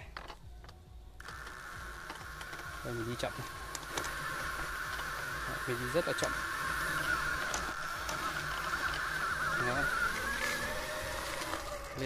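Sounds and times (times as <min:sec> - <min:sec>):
electric motor whining: 0:00.0 - 0:12.0.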